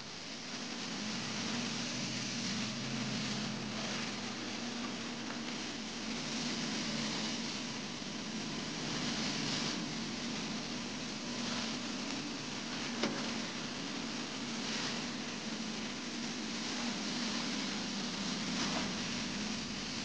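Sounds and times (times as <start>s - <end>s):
carpet cleaner suction hiss: 0.0s - 20.0s
steady low hum: 0.0s - 20.0s.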